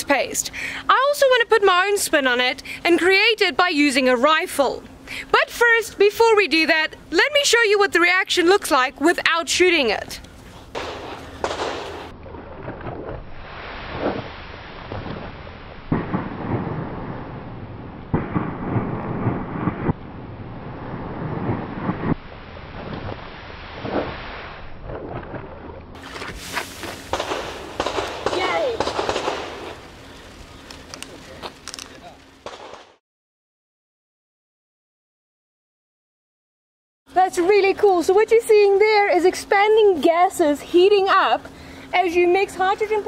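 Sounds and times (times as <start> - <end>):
foam erupting with rushing crackle: 13.3 - 20.0, 20.6 - 25.2, 26.0 - 29.9.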